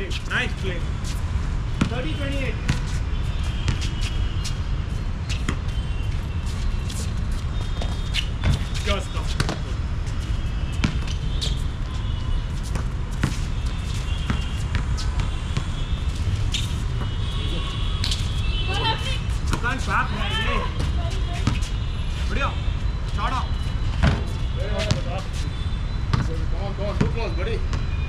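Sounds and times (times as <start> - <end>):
basketball bouncing on hard court: 1.8 - 2.1, 9.4 - 9.7, 10.7 - 11.5, 12.7 - 15.8.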